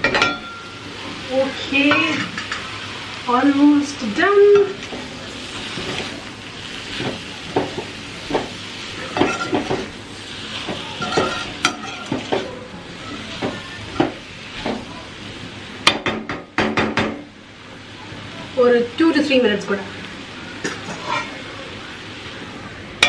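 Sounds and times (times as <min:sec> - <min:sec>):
vegetables sizzling in a pan: 0:00.0 - 0:23.0
metal spatula scraping a pan: 0:09.1 - 0:12.5, 0:20.6 - 0:21.4.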